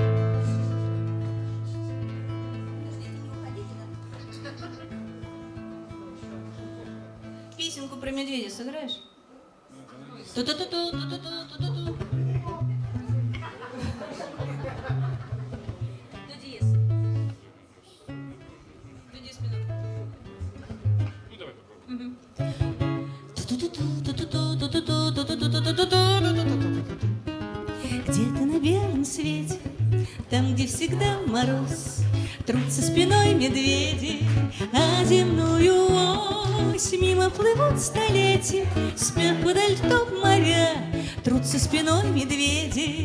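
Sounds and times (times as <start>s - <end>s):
acoustic guitar picked melody: 0.0s - 7.9s, 10.4s - 17.5s, 18.1s - 21.3s, 22.4s - 43.0s.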